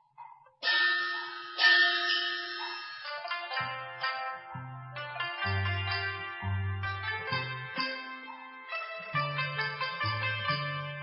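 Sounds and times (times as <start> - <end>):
struck ringing metallic notes: 0.0 - 11.0.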